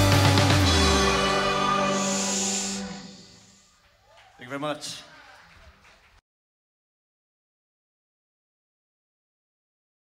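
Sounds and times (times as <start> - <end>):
band chord ringing out: 0.0 - 3.5.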